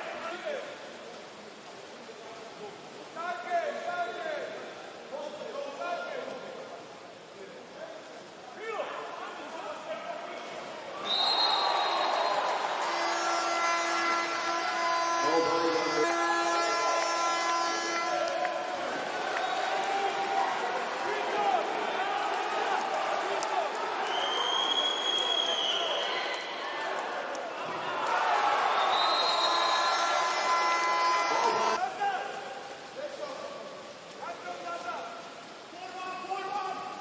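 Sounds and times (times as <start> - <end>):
crowd cheering and chanting: 11.8 - 24.3, 26.1 - 31.8
steady horn: 12.8 - 18.3.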